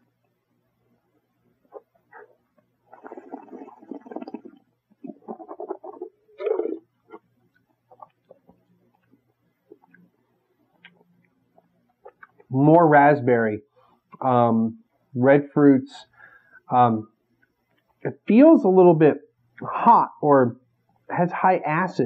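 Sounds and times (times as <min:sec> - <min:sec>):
wine being swished and slurped: 0:02.9 - 0:06.8
mouth and lip clicks: 0:10.7 - 0:12.5.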